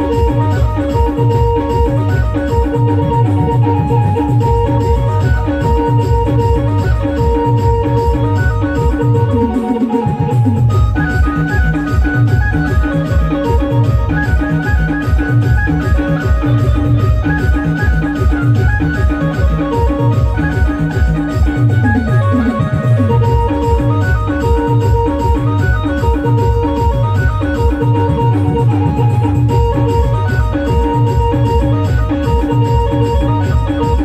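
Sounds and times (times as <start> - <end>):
electronic keyboard dance tune: 0.0 - 34.0
fast steady drum beat: 0.0 - 34.0.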